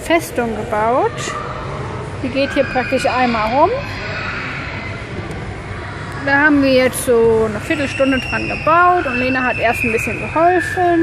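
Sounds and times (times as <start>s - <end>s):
rushing hum of play hall: 0.0s - 11.0s.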